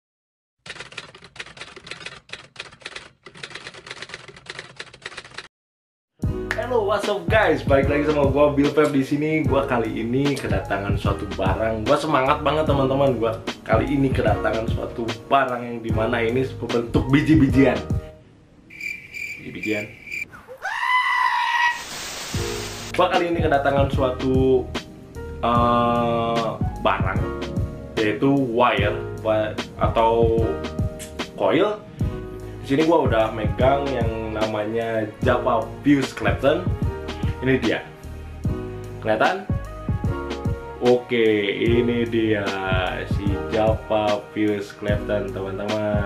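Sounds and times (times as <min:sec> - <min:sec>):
rapid dense clicks: 0:00.6 - 0:05.5
high animal-like call: 0:18.7 - 0:22.0
tv static hiss: 0:21.8 - 0:23.0.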